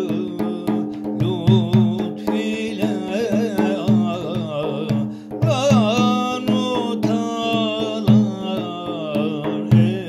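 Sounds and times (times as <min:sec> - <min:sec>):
hand percussion strokes: 0:00.0 - 0:10.0
person singing a hymn: 0:00.0 - 0:10.0.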